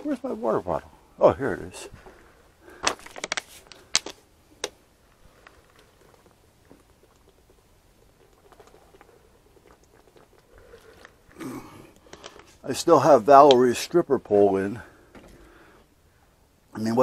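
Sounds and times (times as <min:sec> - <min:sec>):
plastic water bottle crackling: 0:02.6 - 0:12.6
person drinking: 0:05.1 - 0:12.6.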